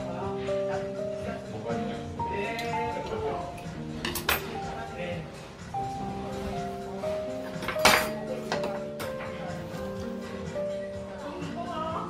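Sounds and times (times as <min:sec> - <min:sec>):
background music with held notes: 0:00.0 - 0:12.0
tableware clinking: 0:03.6 - 0:04.8, 0:07.3 - 0:09.5.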